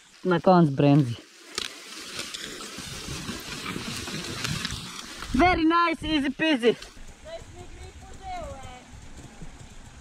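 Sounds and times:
tyres sliding through dry leaves: 0.0s - 5.7s
motorcycle engine running low: 3.2s - 10.0s.

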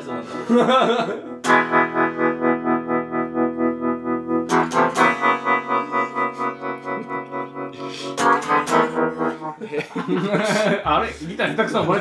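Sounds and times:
electric guitar tremolo chord: 1.4s - 9.5s.

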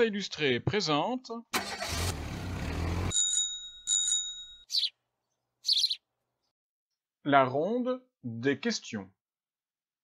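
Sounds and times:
bicycle bell ringing: 3.1s - 4.7s
high bird chirps: 4.7s - 6.1s.

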